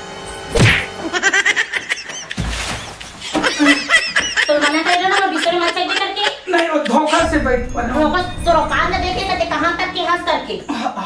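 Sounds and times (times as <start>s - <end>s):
choppy bursts of laughter: 1.0s - 2.4s, 3.3s - 7.3s.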